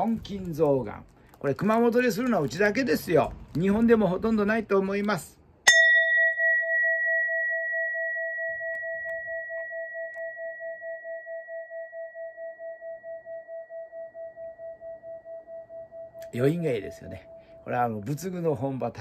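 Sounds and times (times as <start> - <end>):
bowl bell ringing: 5.6 - 19.0.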